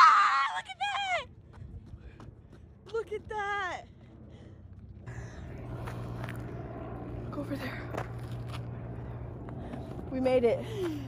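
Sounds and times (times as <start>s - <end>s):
steady low rumble: 0.7s - 11.0s
footsteps on sandy dirt: 1.1s - 11.0s.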